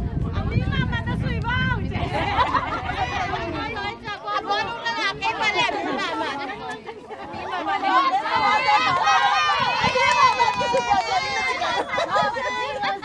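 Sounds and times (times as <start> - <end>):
voices talking and calling: 0.0 - 13.0.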